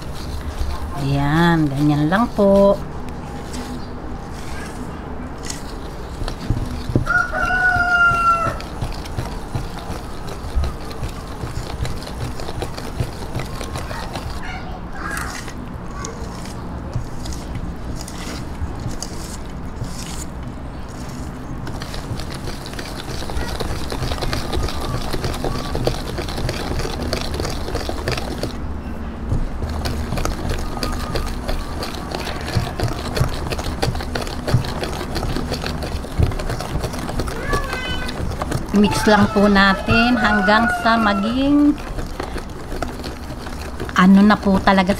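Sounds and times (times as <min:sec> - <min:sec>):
whisk beating in metal bowl: 0:00.0 - 0:02.8, 0:05.4 - 0:15.5, 0:21.6 - 0:28.7, 0:29.3 - 0:44.9
rooster crowing: 0:07.0 - 0:08.7, 0:38.8 - 0:41.8.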